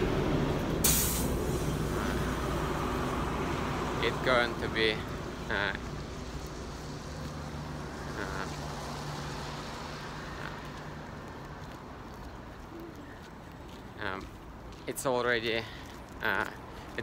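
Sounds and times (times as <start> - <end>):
city street traffic hum: 0.0 - 17.0.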